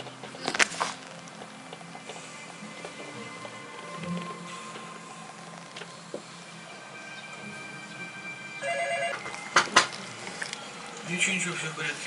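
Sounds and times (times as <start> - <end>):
telephone ringing: 8.6 - 9.9.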